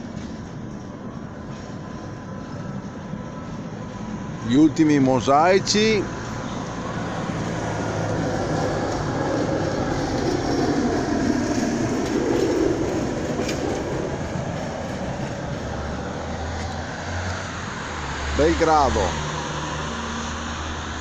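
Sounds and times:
passing vehicle rumble: 0.0 - 21.0.

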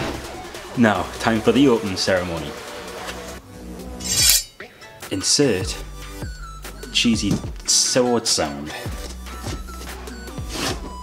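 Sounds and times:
background music: 0.0 - 11.0
metallic ringing shing: 4.0 - 4.8.

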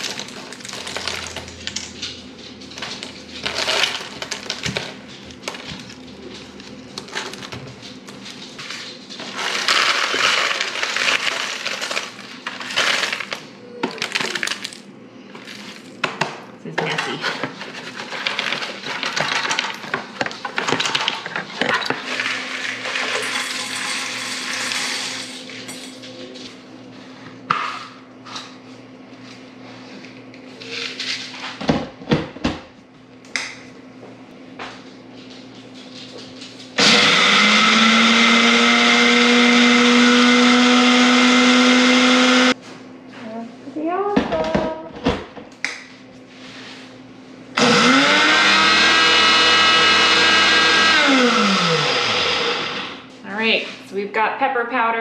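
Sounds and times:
electric grinder motor running: 36.8 - 42.6, 47.6 - 53.0.

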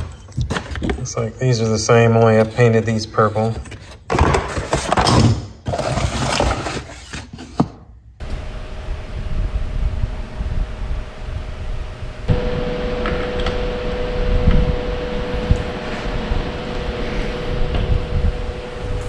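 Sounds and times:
cardboard box rustling: 5.7 - 7.7
low hum with faint tone: 8.1 - 19.0
steady tone: 8.3 - 19.0.

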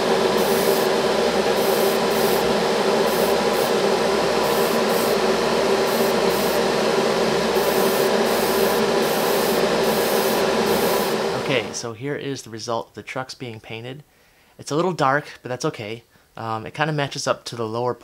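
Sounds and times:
airbrush spraying hiss: 0.0 - 11.8
motor hum: 0.0 - 11.8.

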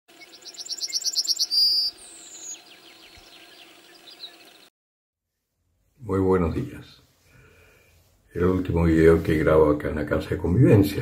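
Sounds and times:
bird singing: 0.1 - 4.7
faint bird chirps: 0.1 - 4.7.

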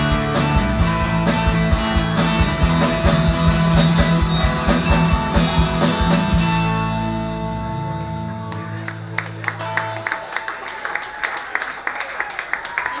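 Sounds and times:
audience clapping: 8.4 - 13.0.

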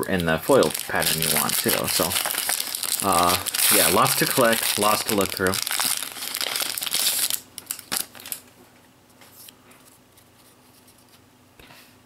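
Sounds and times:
foil wrapper crinkling: 0.0 - 8.5.

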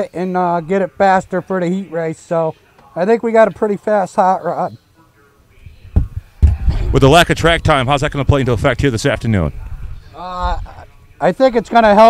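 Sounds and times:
man speaking: 0.0 - 5.8, 6.6 - 12.0
faint background noise: 0.0 - 12.0
low thumps: 5.9 - 8.7.

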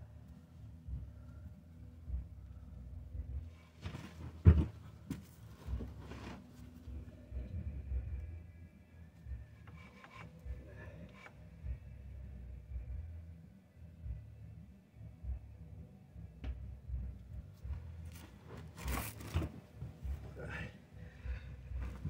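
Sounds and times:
scraping and rubbing of parts: 9.6 - 11.4, 18.1 - 20.3.

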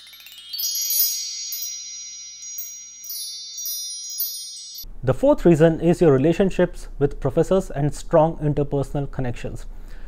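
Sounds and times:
shimmering bell-like chime: 0.0 - 4.9.

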